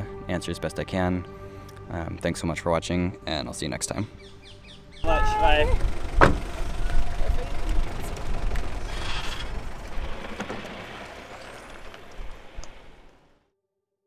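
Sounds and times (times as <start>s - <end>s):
truck engine rumble: 5.0s - 13.3s.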